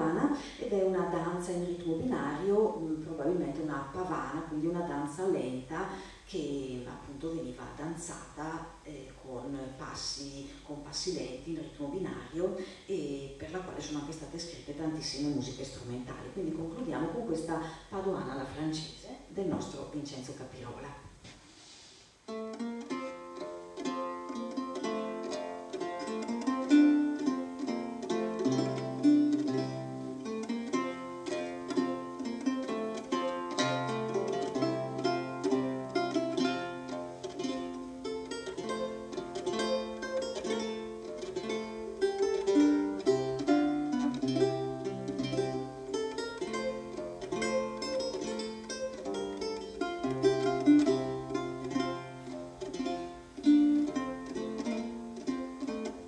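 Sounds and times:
solo lute playing: 22.2 - 56.0.

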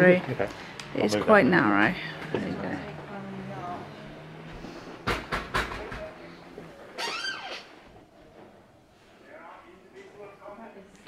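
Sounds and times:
sharp knocks: 5.0 - 6.1.

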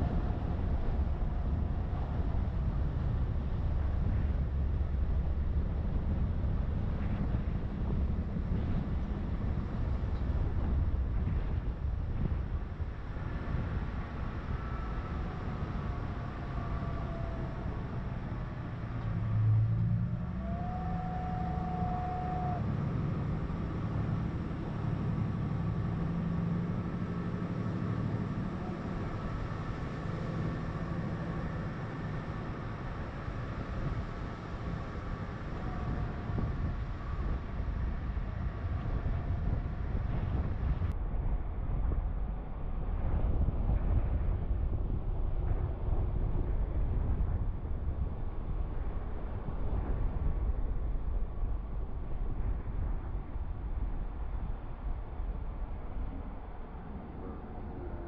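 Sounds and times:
vehicle engine humming: 0.0 - 41.0
wind rumble on microphone: 0.0 - 58.0.

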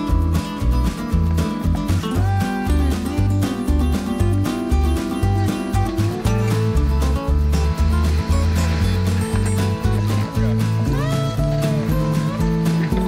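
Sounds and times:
country music with bass and guitar: 0.0 - 13.0.

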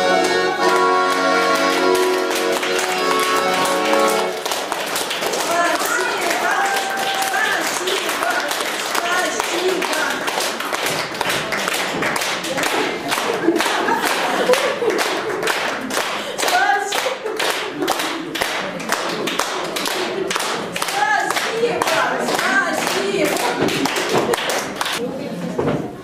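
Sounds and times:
audience applauding: 0.0 - 25.0.

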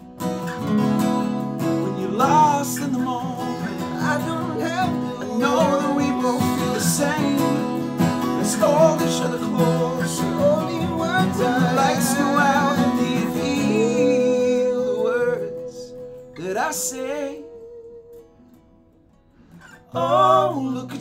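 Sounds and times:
acoustic guitars strummed: 0.0 - 21.0
man singing: 1.8 - 18.2, 19.9 - 21.0.

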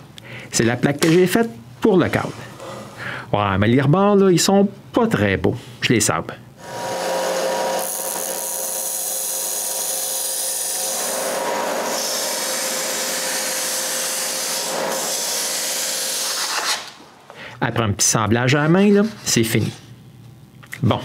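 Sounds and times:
belt sander running: 6.6 - 16.8.

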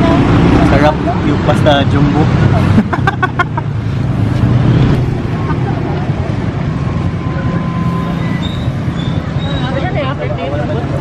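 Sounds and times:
motorcycles and cars passing: 0.0 - 11.0.

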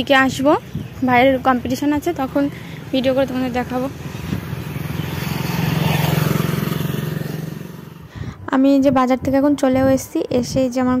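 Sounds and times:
motorcycle engine passing: 0.6 - 8.3.

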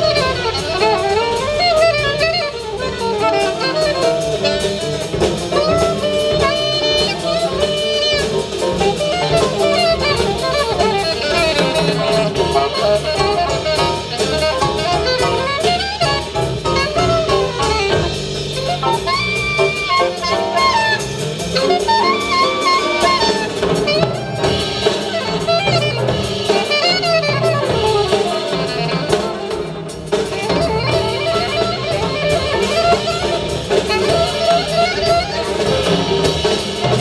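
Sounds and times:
acoustic piano: 0.0 - 37.0
alto saxophone melody: 0.0 - 37.0
drum kit: 0.0 - 37.0
upright bass: 0.0 - 37.0.

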